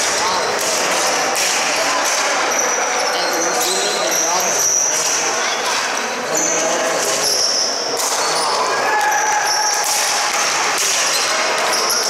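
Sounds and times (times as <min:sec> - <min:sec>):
players shouting: 0:07.6 - 0:12.0.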